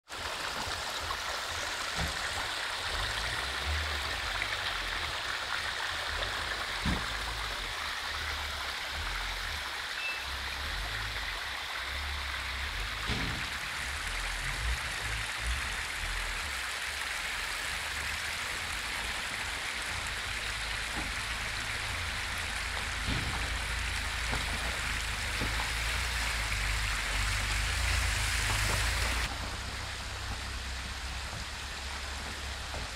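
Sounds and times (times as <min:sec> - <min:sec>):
floodwater rushing and splashing: 0:00.0 - 0:32.9.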